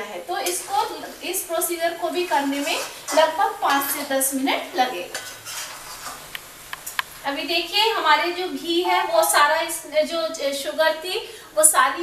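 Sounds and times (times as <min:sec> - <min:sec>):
spatula scraping metal pan: 0:02.2 - 0:04.2, 0:05.0 - 0:06.3.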